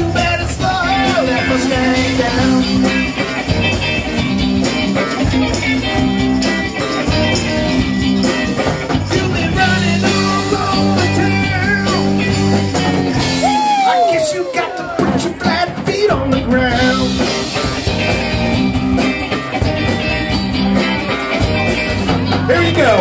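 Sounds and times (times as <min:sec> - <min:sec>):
rock band blues groove: 0:00.0 - 0:23.0.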